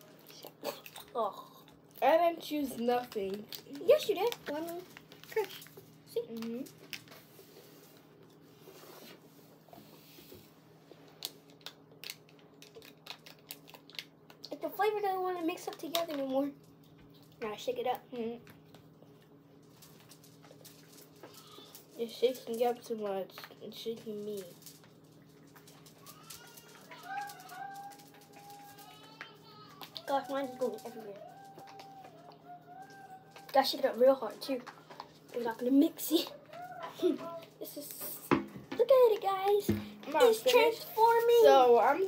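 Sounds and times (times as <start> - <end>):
paper packet tearing and crinkling: 2.7 - 7.1, 24.2 - 32.2.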